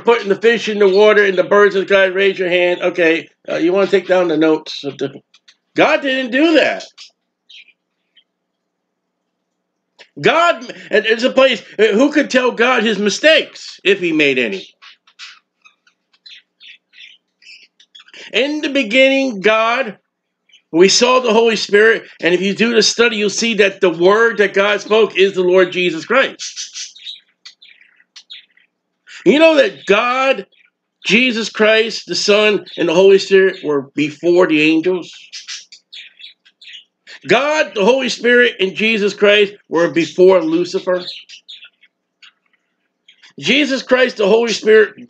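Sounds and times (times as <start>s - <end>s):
person speaking: 0.0s - 7.1s, 10.0s - 15.3s, 18.1s - 20.0s, 20.7s - 27.0s, 29.1s - 35.4s, 37.1s - 41.4s, 43.2s - 45.0s
bird chirping: 0.0s - 45.0s.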